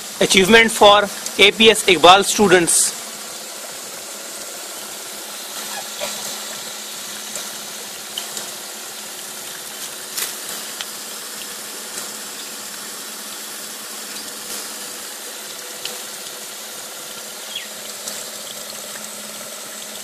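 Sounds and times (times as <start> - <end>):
water from hose splashing: 0.0 - 20.0.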